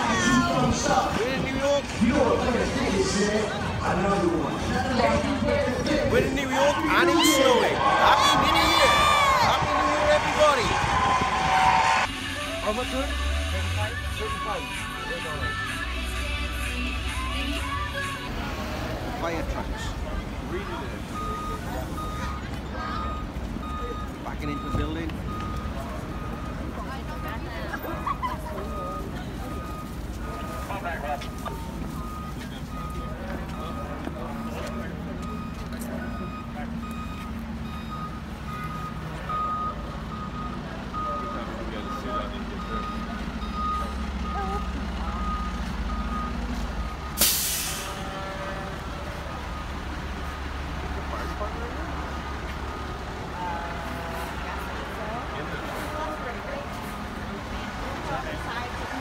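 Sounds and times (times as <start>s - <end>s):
diesel truck engine: 0.0s - 59.0s
reversing beeper: 20.5s - 27.5s, 28.6s - 54.4s
air brakes hissing: 47.1s - 48.1s.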